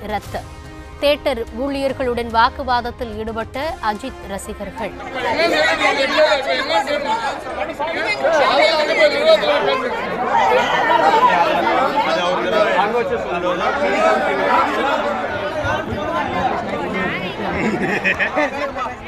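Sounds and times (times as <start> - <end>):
crowd of men arguing: 5.0 - 19.0.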